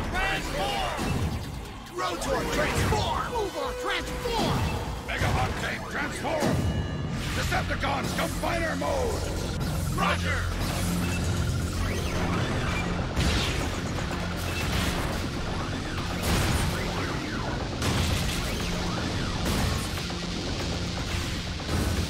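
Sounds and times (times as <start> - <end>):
dramatic background music: 0.0 - 22.0.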